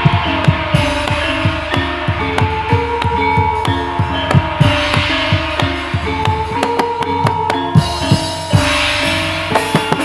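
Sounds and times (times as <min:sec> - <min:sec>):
ringing metal gong-chime tones: 0:00.0 - 0:10.0.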